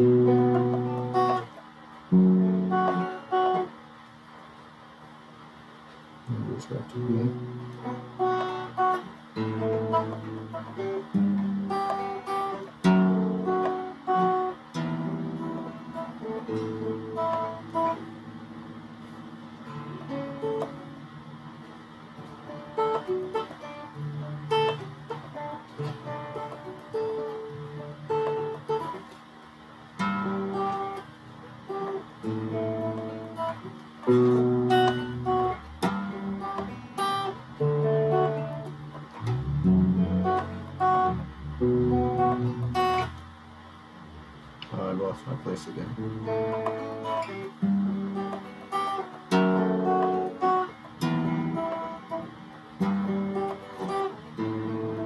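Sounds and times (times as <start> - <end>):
electric guitar solo: 0.0 - 3.7, 6.6 - 29.2, 29.9 - 44.8, 45.8 - 55.0.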